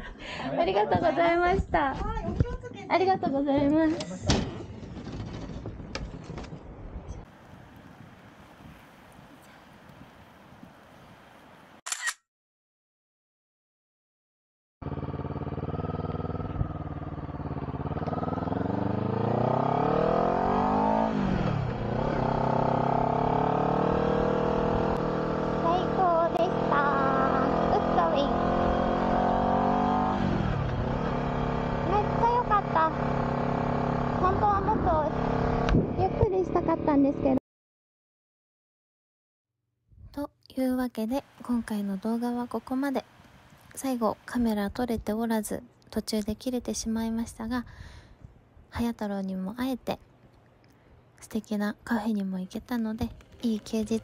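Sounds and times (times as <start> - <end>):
faint outdoor background: 0.0 - 12.2, 14.8 - 37.4, 39.5 - 54.0
camera shutter click: 11.8 - 12.2
motorcycle engine running: 14.8 - 36.9
person talking: 40.2 - 43.0, 43.7 - 47.6, 51.2 - 54.0.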